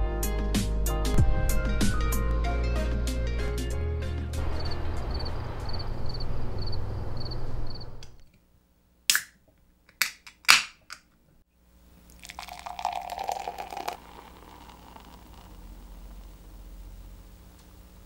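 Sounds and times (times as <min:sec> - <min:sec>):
music: 0:00.0 - 0:05.7
beer pouring into a glass: 0:12.0 - 0:16.5.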